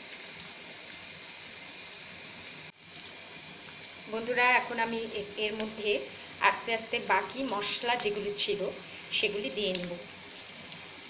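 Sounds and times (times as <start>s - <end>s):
potatoes sizzling in hot oil: 0.0s - 11.0s.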